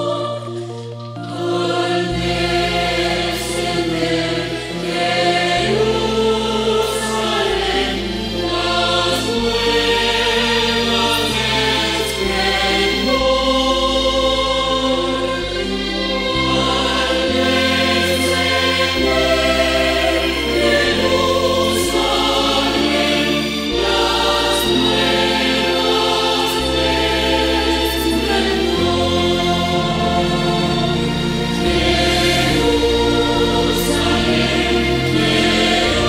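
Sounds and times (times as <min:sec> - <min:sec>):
church choir singing a hymn: 0:00.0 - 0:36.0
instrumental accompaniment: 0:00.0 - 0:36.0.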